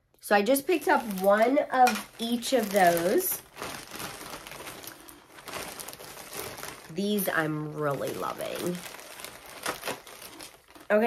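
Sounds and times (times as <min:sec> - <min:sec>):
soft crinkling rustle: 0:00.4 - 0:11.0.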